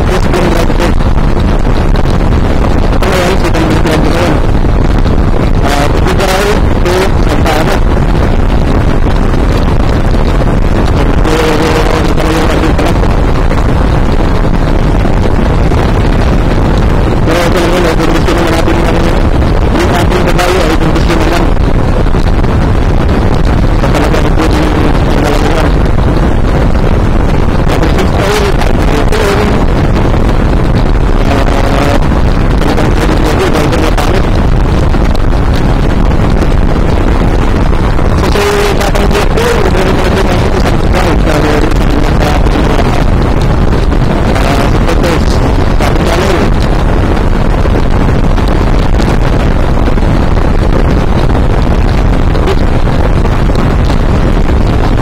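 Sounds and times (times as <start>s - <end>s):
wind noise on microphone: 0.0s - 55.0s.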